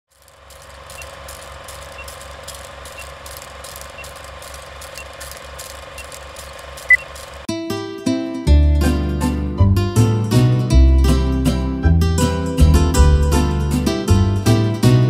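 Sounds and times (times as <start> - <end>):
film projector hum and clatter: 0.1 - 7.5
small ticks: 0.1 - 7.5
short beep: 6.9 - 7.1
acoustic guitar music: 7.0 - 15.0.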